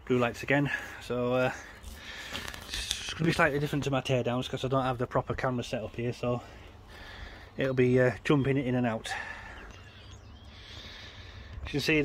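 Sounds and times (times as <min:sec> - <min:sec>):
short breath: 0:10.5 - 0:11.6.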